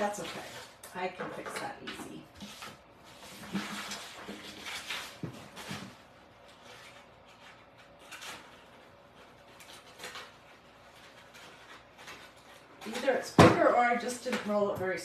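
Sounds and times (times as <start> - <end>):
paper rustling: 2.4 - 13.3
scissors cutting paper: 6.6 - 13.2.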